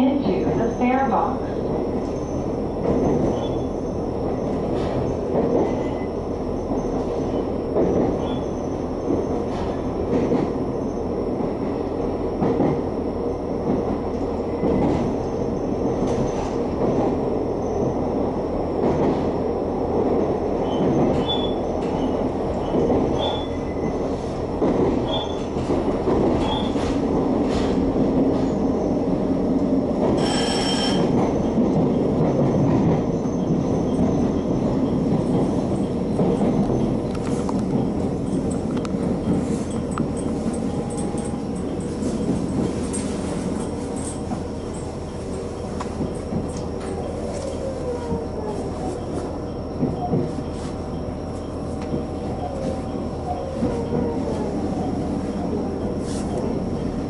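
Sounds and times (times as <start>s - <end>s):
wheels rumbling on rail: 0.0s - 57.0s
railcar engine and motor drone: 1.1s - 57.0s
high wheel squeals: 30.2s - 31.2s.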